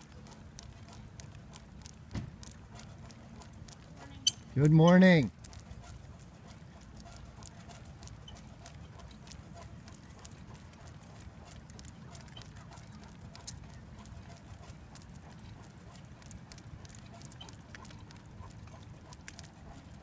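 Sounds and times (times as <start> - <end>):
dog paws clicking on pavement: 0.0 - 20.0
wheels rolling on road: 0.0 - 20.0.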